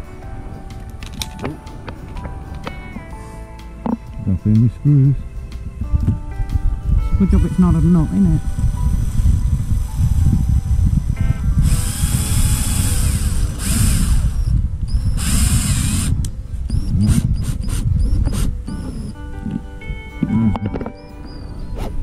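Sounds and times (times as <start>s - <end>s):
cordless drill whirring: 11.6s - 16.1s, 16.7s - 19.1s.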